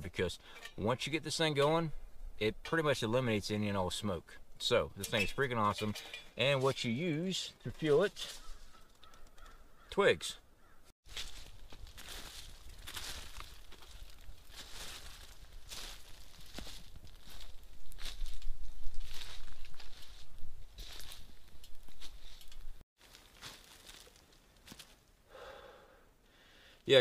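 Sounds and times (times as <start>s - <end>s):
quiet woodland ambience: 0.0s - 27.0s.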